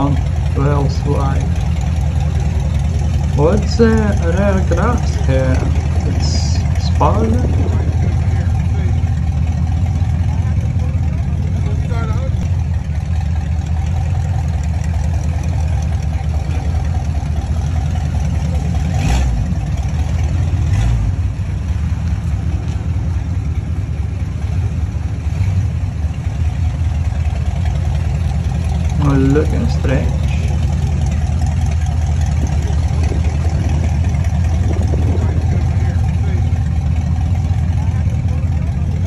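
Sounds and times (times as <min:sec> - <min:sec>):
car engine idling: 0:00.0 - 0:39.0.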